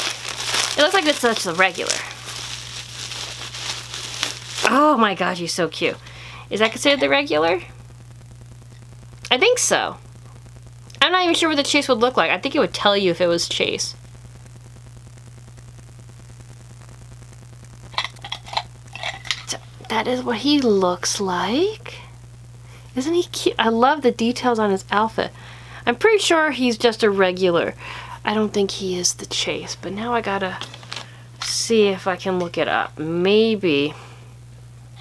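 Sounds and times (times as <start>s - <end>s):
plastic wrapping crinkling: 0.0s - 7.2s, 17.9s - 20.0s, 30.6s - 31.2s
low hum with faint hiss: 0.0s - 35.0s.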